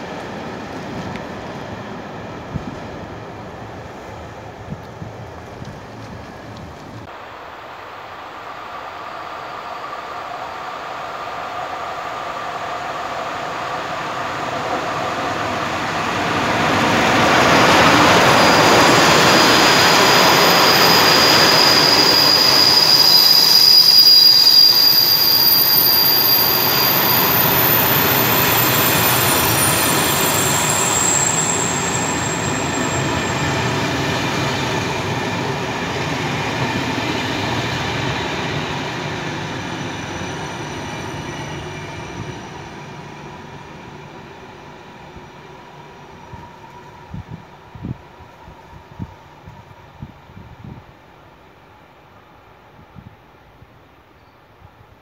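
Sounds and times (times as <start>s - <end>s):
train coaches rolling on rails: 0.0s - 48.7s
electric locomotive passing: 0.0s - 54.6s
high wheel squeal: 8.2s - 35.4s.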